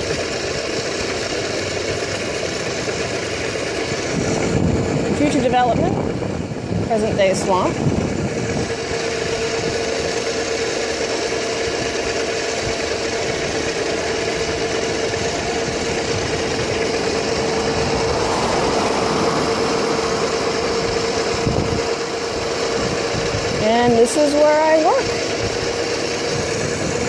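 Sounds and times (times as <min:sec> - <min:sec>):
scooter motor whine: 0:00.0 - 0:27.0
wind on microphone: 0:04.0 - 0:10.1, 0:14.4 - 0:24.0.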